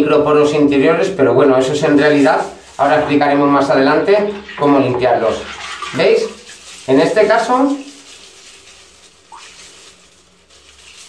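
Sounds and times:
handling wet mesh bag: 1.7s - 4.6s, 5.4s - 11.0s
faint water sounds: 1.9s - 11.0s.

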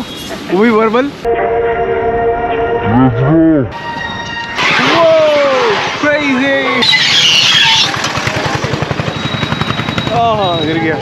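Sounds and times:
street traffic: 0.0s - 11.0s
voices: 4.6s - 11.0s.

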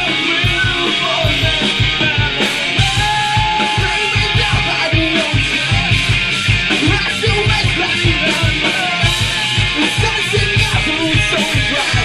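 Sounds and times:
drum kit: 0.0s - 12.0s
electric guitar: 0.0s - 12.0s.

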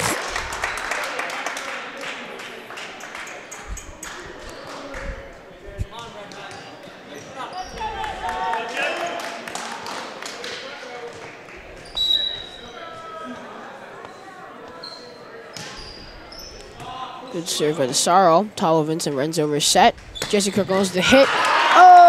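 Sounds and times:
chatter of players and spectators: 0.0s - 22.0s.

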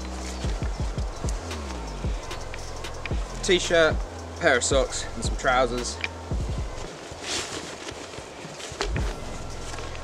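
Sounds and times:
backpack click: 5.8s - 6.2s, 7.8s - 9.2s
fabric rustling: 6.4s - 10.0s.

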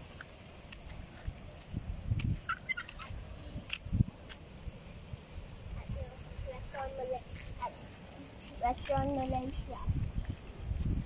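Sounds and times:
wind rumble on microphone: 0.0s - 11.0s
person's voice: 5.8s - 9.9s.

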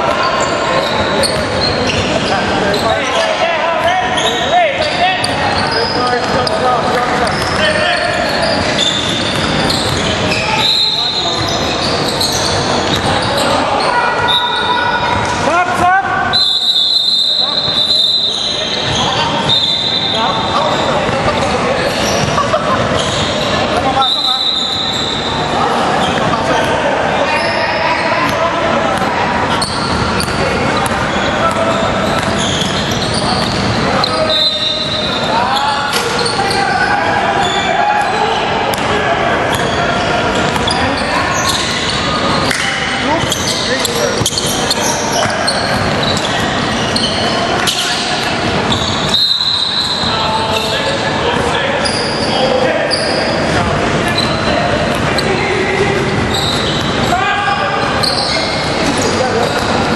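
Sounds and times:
indistinct echoing voices: 0.0s - 59.9s
referee whistle blasts: 9.7s - 11.5s, 16.3s - 18.8s, 19.4s - 20.4s, 24.0s - 25.3s, 34.1s - 35.4s, 48.7s - 50.7s.

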